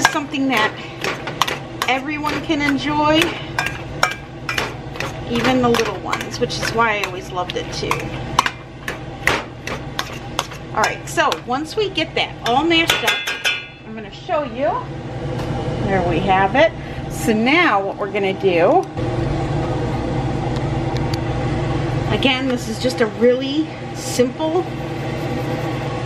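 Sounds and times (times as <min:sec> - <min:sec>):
potato masher knocking on metal pot: 0:00.0 - 0:11.6, 0:12.4 - 0:13.7
low mechanical hum: 0:00.0 - 0:26.0.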